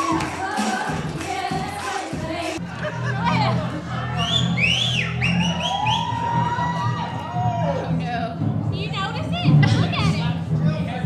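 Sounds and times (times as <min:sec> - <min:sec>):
music with steady bass line: 0:00.0 - 0:11.0
high whistles rising and falling: 0:04.2 - 0:07.3.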